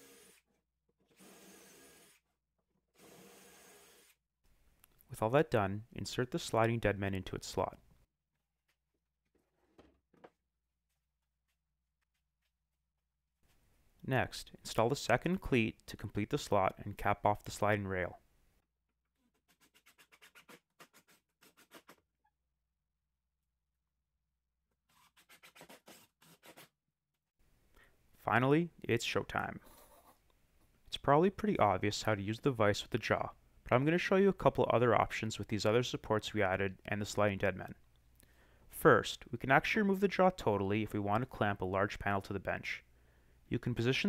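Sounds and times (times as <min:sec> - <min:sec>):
drill driving screw into wood: 0:00.0 - 0:00.5, 0:01.1 - 0:02.2, 0:03.0 - 0:04.2.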